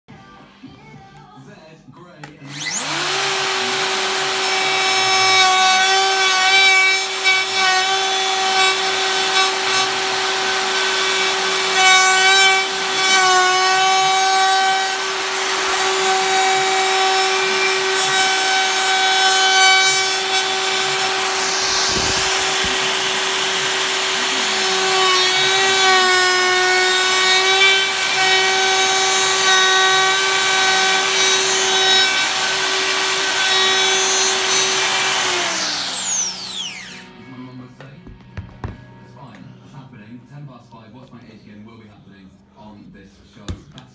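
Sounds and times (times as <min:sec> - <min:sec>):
router whining cutting wood: 0:02.5 - 0:37.2.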